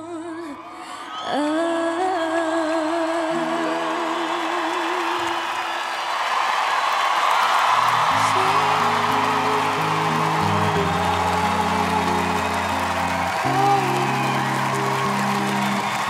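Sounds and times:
audience cheering: 0:00.5 - 0:16.0
piano chords: 0:08.0 - 0:16.0
girl singing sustained note: 0:08.1 - 0:15.6.

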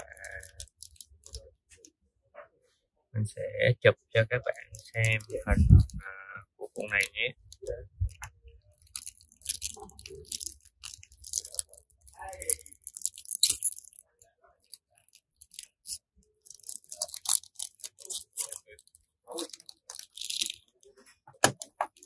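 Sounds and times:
foil wrapper crinkling and tearing: 0:00.0 - 0:01.4, 0:04.6 - 0:06.0, 0:06.8 - 0:22.0.

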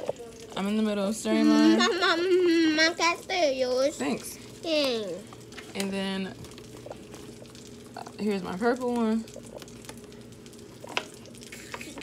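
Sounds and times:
sausages sizzling in a pan: 0:00.0 - 0:12.0.

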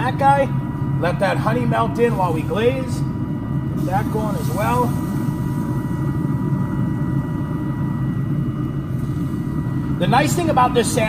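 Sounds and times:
faint high hum: 0:00.0 - 0:11.0
steady low rumble: 0:00.0 - 0:11.0.

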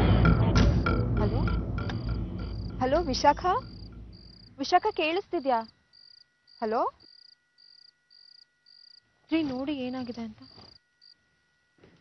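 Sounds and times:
cricket chirping: 0:00.8 - 0:11.8.

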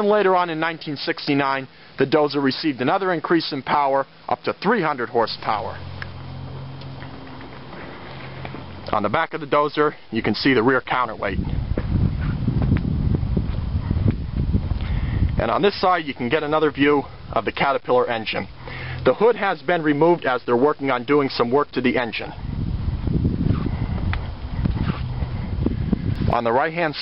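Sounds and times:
footsteps crunching on gravel: 0:06.5 - 0:09.1, 0:11.1 - 0:14.5
wind buffeting microphone: 0:10.2 - 0:19.3, 0:21.6 - 0:26.9.

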